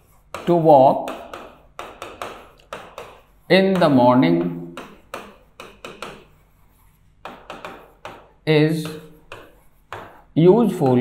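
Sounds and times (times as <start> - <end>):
stylus tapping on glass screen: 0.3 - 6.3, 7.2 - 10.2.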